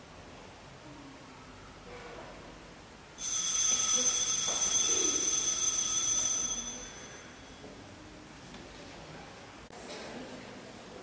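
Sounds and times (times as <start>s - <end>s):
small bell ringing: 3.2s - 7.6s.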